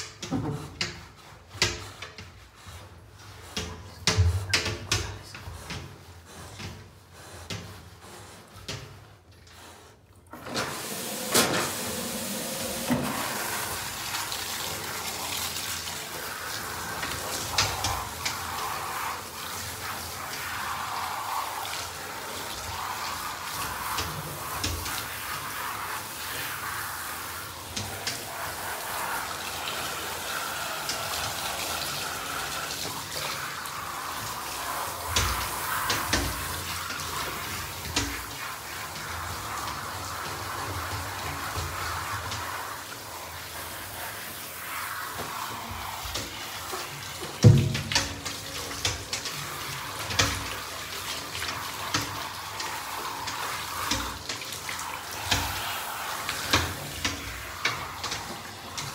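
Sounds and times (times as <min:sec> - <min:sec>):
shower head spraying water: 0:00.0 - 0:58.9
knocks against bathtub: 0:47.4 - 0:48.2.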